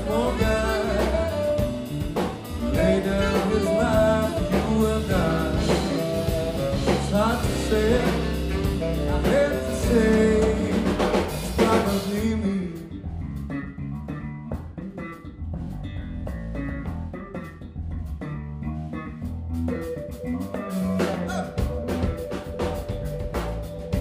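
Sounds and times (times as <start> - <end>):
person singing: 0.0 - 1.9, 2.5 - 13.0, 20.7 - 21.8
electric piano: 0.0 - 12.7, 19.5 - 24.0
bass guitar: 0.0 - 24.0
drum kit: 0.0 - 24.0.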